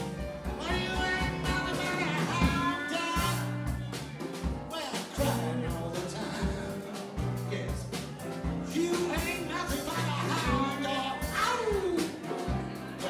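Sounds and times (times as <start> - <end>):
bass line: 0.0 - 13.0
drum kit beat: 0.0 - 13.0
man singing: 0.4 - 3.8, 4.6 - 13.0.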